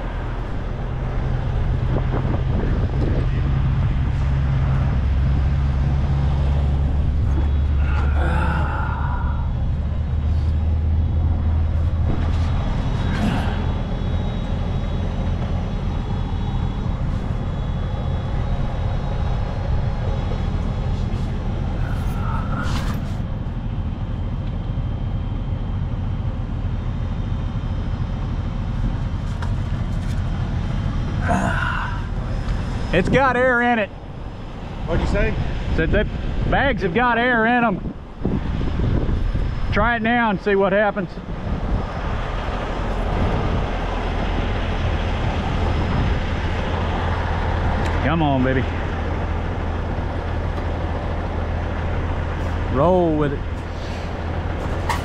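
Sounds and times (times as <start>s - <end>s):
diesel truck engine idling: 0.0s - 55.0s.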